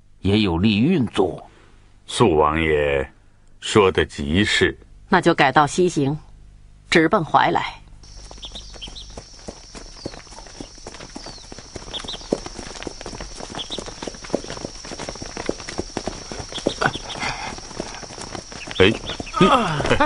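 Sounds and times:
footsteps of people walking: 8.0 - 20.0
horse hooves clip-clopping: 8.0 - 20.0.

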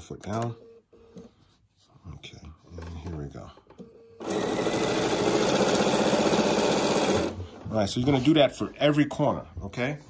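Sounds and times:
electric sewing machine stitching: 4.2 - 7.4.

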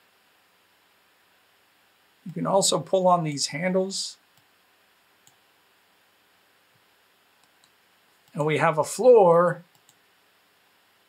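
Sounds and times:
faint computer mouse clicks: 9.7 - 10.0.

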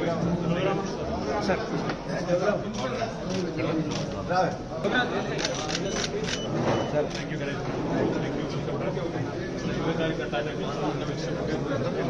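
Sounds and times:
men's voices in a crowd: 0.0 - 12.0
camera shutter clicks: 5.4 - 6.5.

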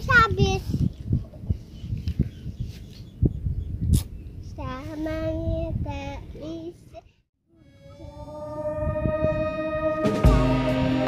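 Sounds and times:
child singing a long note: 7.6 - 11.0.

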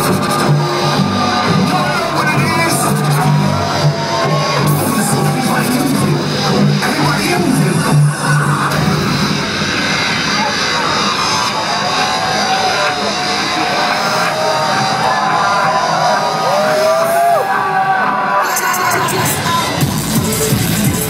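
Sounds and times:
gliding synth tones: 0.0 - 17.9
electronic dance music: 0.0 - 21.0.

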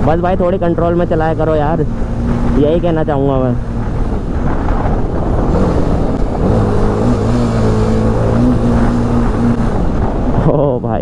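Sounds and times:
motorcycle engine revving: 0.0 - 10.8
wind rush on microphone: 0.0 - 11.0.

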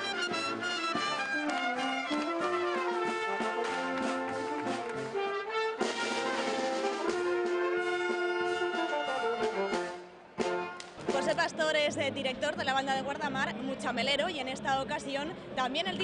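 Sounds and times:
brass band playing: 0.0 - 13.3.

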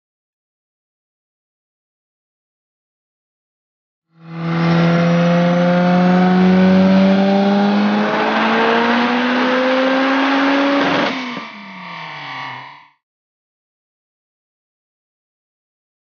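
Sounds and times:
turbocharged car engine revving: 4.2 - 13.0.

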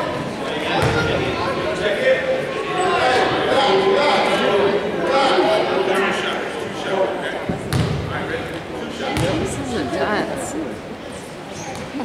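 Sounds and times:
voices in gym: 0.0 - 12.0
basketball bouncing on hardwood: 7.7 - 8.0.

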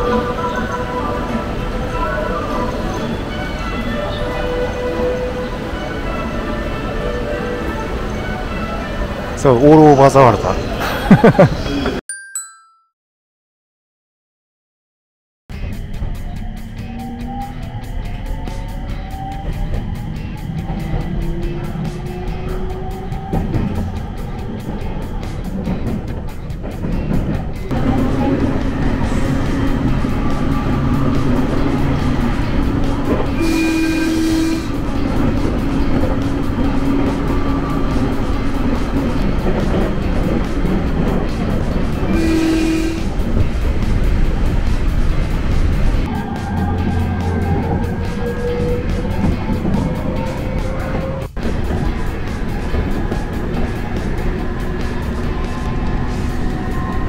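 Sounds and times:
train rumble inside carriage: 0.0 - 11.9, 15.7 - 57.0
background music: 0.0 - 12.7, 15.5 - 57.0.

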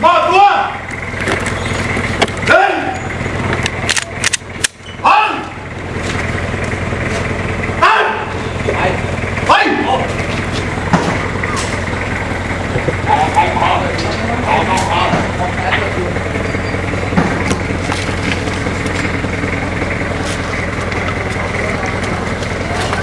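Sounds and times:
engine idling: 0.0 - 23.0
sharp clicks: 3.6 - 4.8
muffled voices: 12.7 - 23.0.

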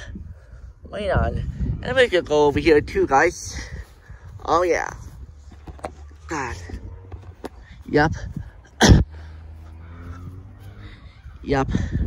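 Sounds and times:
low outdoor rumble: 0.0 - 11.6
faint engine-like tones: 8.4 - 11.4.

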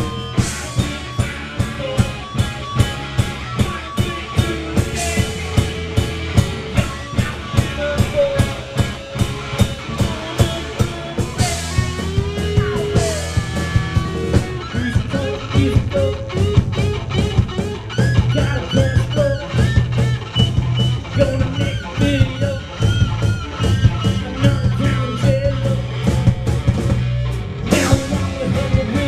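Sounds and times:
bass guitar: 0.0 - 29.0
electric guitar lead: 0.0 - 29.0
steady drumbeat: 0.0 - 29.0.

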